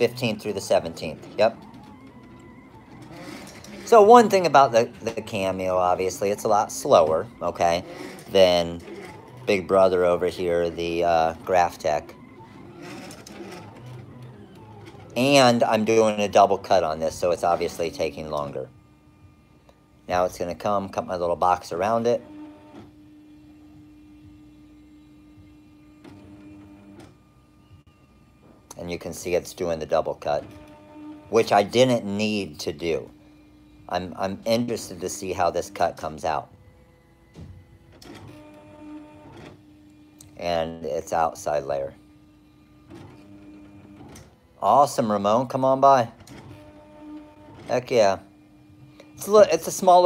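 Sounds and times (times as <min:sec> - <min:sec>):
vinyl cutter motor hum: 0:00.0 - 0:50.0.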